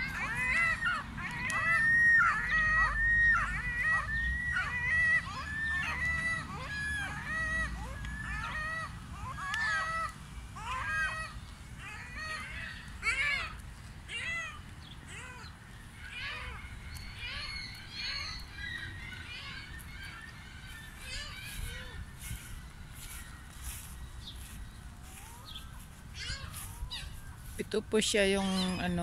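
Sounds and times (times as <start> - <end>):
gulls calling: 0.0 - 29.0.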